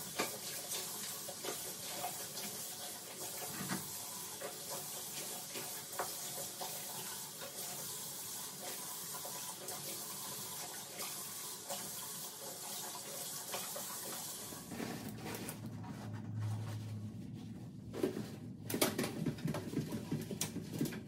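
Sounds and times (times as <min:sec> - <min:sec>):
water running from a tap: 0:00.0 - 0:14.7.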